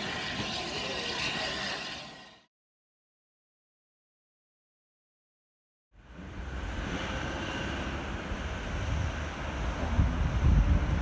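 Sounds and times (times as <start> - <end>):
distant train rumbling: 0.0 - 2.5.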